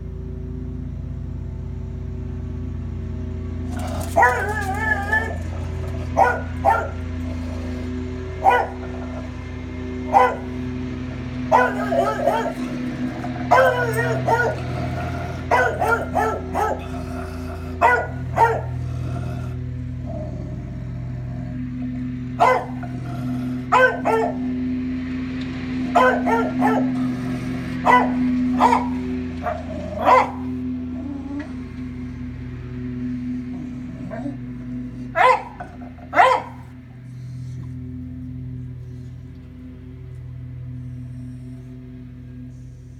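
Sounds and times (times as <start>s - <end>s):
lawnmower engine humming: 0.0s - 42.9s
dog barking and baying: 3.7s - 10.7s, 11.4s - 21.6s, 22.3s - 24.6s, 25.7s - 31.7s, 33.5s - 36.8s.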